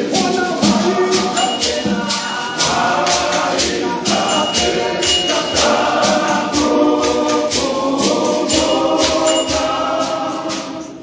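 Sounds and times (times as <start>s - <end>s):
hand shakers beat: 0.0s - 11.0s
men's choir singing in harmony: 0.0s - 11.0s.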